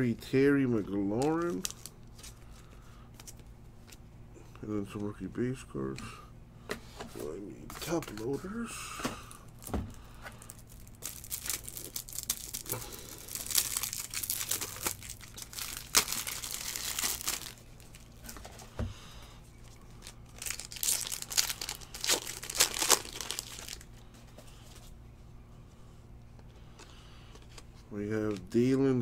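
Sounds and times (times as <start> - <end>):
foil wrapper tearing and crinkling: 1.1 - 1.9, 10.5 - 18.4, 20.0 - 23.9.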